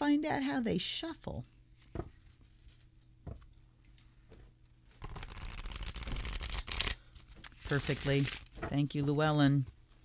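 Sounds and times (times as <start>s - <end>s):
cards rattling: 5.0s - 8.6s
cards being riffle-shuffled: 5.0s - 8.7s.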